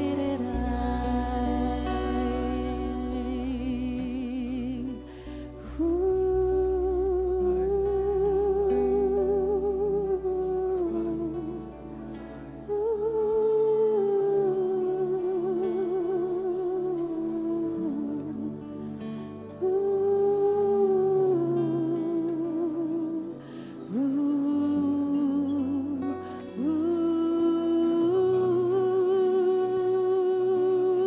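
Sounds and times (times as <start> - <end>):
woman singing a long note: 0.0 - 12.0, 12.6 - 18.7, 19.6 - 31.0
soft sustained instrumental chords: 0.0 - 31.0.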